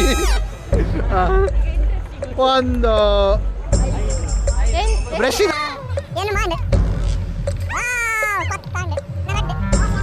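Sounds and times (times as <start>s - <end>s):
low crowd rumble: 0.0s - 10.0s
person's high-pitched cry: 7.7s - 8.6s.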